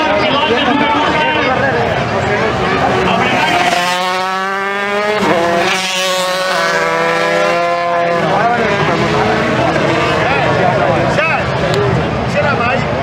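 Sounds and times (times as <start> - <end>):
crowd chatter: 0.0 - 13.0
motorcycle engine revving high: 0.8 - 12.2.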